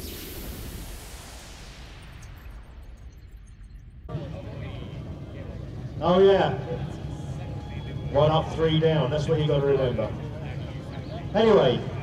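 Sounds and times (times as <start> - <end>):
swooshing sound effect: 0.0 - 4.0
outdoor background noise: 0.0 - 12.0.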